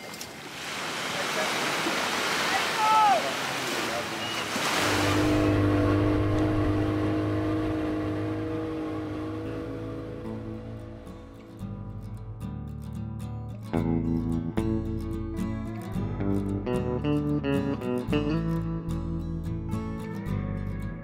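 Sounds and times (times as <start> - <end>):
surf washing onto beach: 0.0 - 10.6
water rushing past hull: 0.0 - 11.5
outboard motor running: 4.5 - 11.5.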